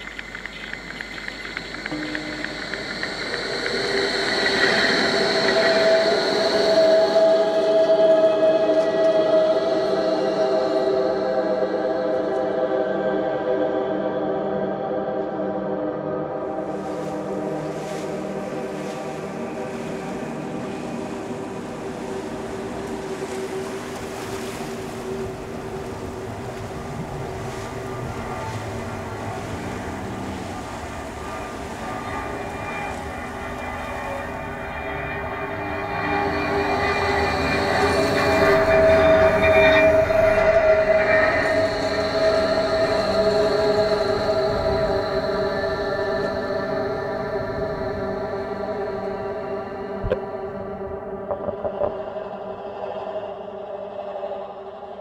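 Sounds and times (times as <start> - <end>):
train whining tones: 0.0 - 11.5, 16.6 - 51.4
rail noise: 0.0 - 11.9, 16.5 - 52.0.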